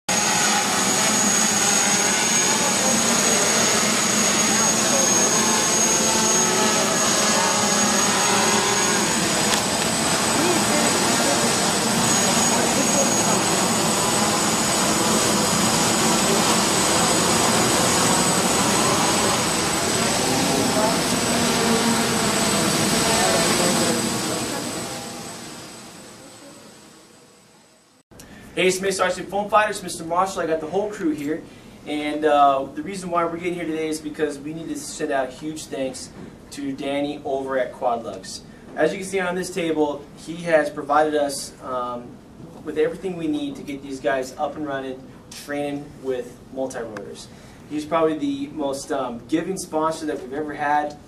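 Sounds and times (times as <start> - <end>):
quadcopter propellers whining: 0.1 - 28.0
people talking: 10.2 - 13.7, 19.9 - 22.0, 22.6 - 24.8, 28.6 - 51.0.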